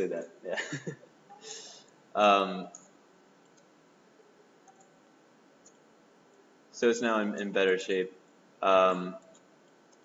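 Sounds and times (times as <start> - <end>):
computer mouse clicks: 2.7 - 3.7, 4.6 - 5.0, 5.6 - 6.4, 9.2 - 10.0.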